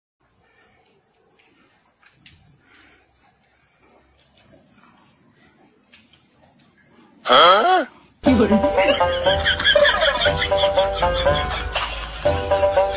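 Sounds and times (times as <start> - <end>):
high-pitched insect chorus: 0.2 - 12.9.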